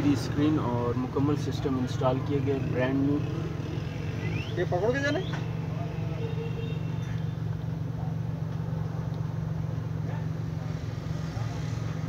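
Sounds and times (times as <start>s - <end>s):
vehicle running rumble: 0.0s - 12.0s.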